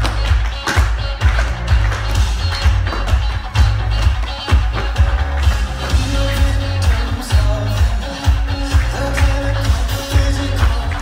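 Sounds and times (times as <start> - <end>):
tap shoes clicking on stage: 0.0 - 7.1
pop music over loudspeaker: 0.0 - 11.0.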